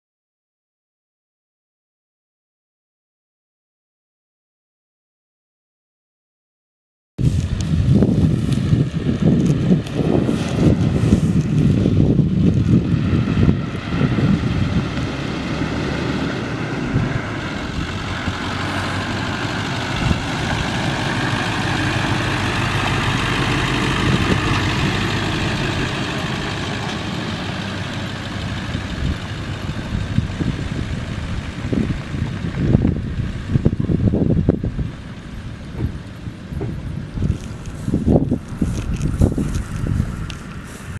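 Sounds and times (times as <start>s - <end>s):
diesel engine running: 7.2s - 40.9s
wind buffeting microphone: 7.2s - 40.9s.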